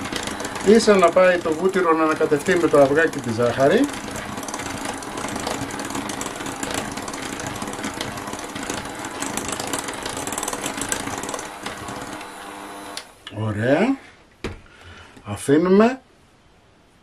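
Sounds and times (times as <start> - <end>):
electric hand mixer running: 0.0 - 13.2.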